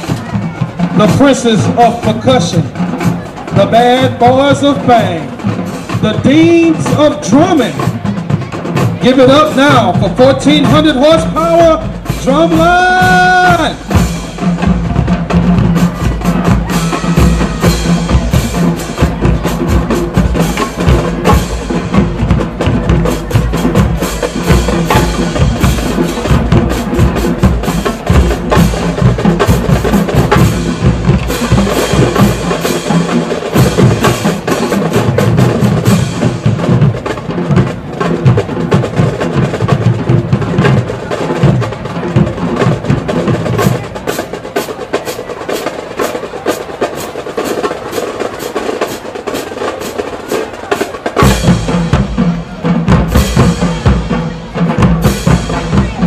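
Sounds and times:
snare drums: 0.0 - 56.0.

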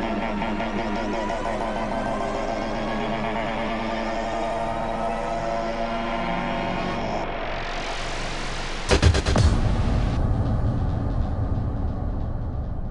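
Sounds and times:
dense electronic drone: 0.0 - 12.9
sharp hits and beat: 8.9 - 12.9.

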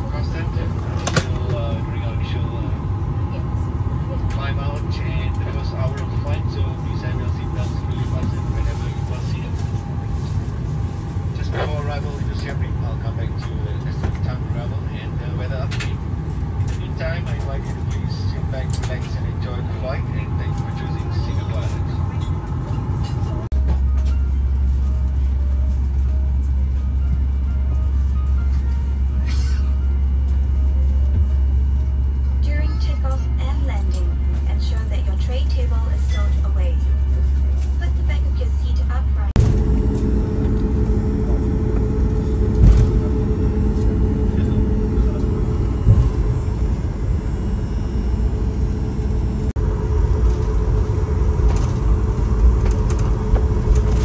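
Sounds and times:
passengers' voices: 0.0 - 24.2, 24.9 - 54.0
airliner cabin rumble: 0.0 - 54.0
deep steady drone: 0.0 - 54.0.

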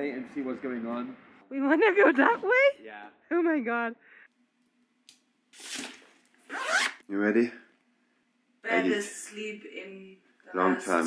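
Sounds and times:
luggage zipper pulled: 5.6 - 7.0.

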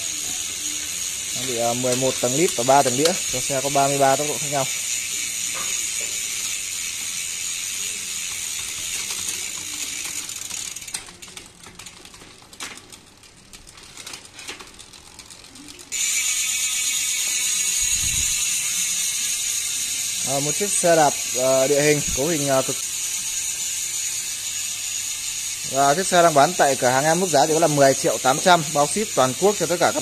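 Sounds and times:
bike rear hub ratcheting: 0.0 - 30.0.

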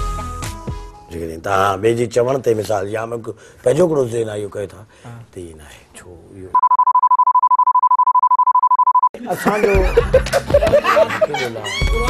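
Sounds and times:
censor bleep: 6.6 - 9.1.

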